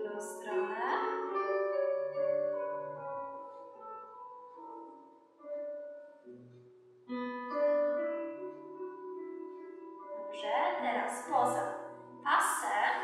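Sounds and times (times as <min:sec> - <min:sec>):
woman's voice: 0:00.0 - 0:01.2, 0:10.4 - 0:11.7, 0:12.3 - 0:13.0
piano chords: 0:00.0 - 0:13.0.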